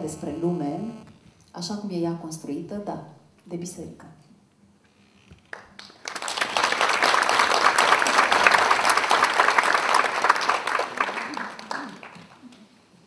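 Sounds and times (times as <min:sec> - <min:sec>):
audience applauding: 0:05.5 - 0:12.6.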